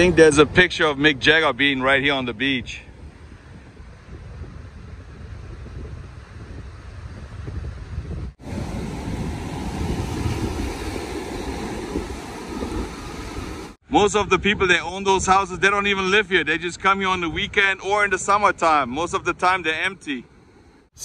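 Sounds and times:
wind buffeting microphone: 0.0 - 20.6
surf washing on sandy beach: 3.2 - 13.8.

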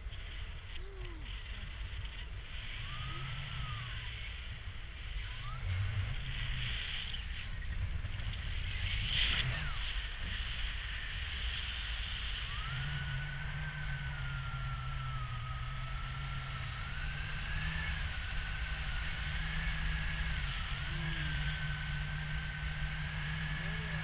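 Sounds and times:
thin wavering high tone: 0.3 - 7.8, 12.1 - 24.0.

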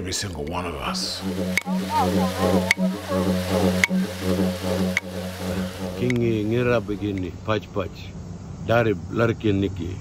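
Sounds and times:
didgeridoo drone: 0.8 - 7.4.

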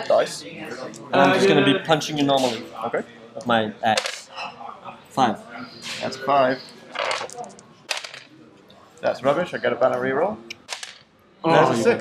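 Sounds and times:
dice clicking on a game board: 7.0 - 8.3, 10.6 - 11.1
dice rattling in a hand: 7.0 - 8.3.

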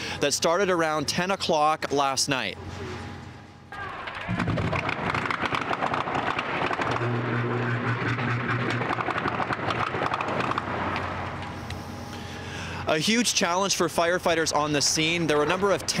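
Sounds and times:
low hum: 2.4 - 16.0
fire crackling and rushing: 4.1 - 16.0.

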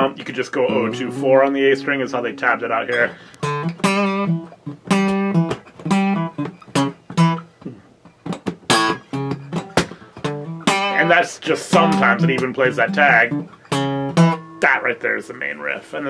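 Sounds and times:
acoustic guitar riff: 0.0 - 14.9.

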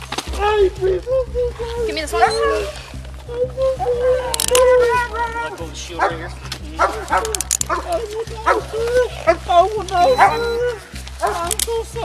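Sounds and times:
low background music: 0.0 - 12.0
dog barking: 2.1 - 2.8, 5.9 - 11.5.

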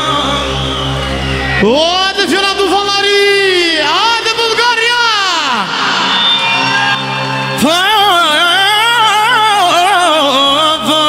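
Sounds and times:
man singing with pitch slide: 0.0 - 1.0, 7.0 - 11.0
live band held notes: 0.0 - 11.0.

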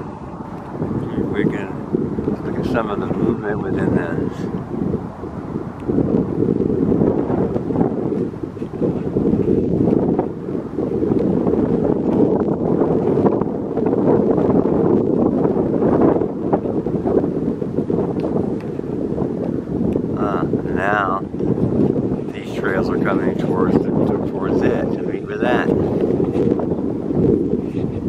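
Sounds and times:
wind buffeting microphone: 0.0 - 28.0.

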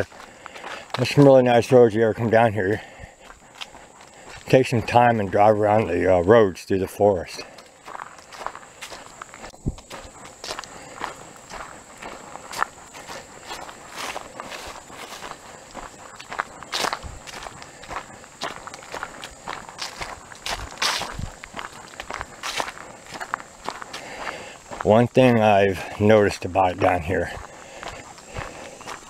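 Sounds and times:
footsteps on dirt road: 0.0 - 29.0.

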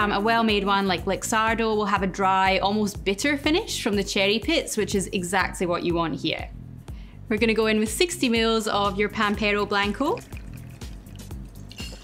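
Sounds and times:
soft background music: 0.0 - 12.0
liquid trickling into jigger: 9.4 - 12.0.

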